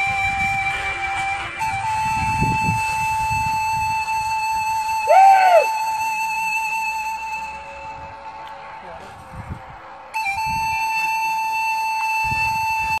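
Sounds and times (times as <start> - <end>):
flute-like long note: 0.0 - 13.0.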